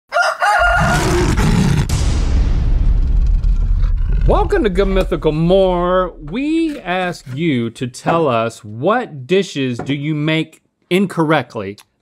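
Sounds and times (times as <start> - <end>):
high wavering crow-like call: 0.1 - 1.2
low rumbling whoosh: 0.8 - 7.4.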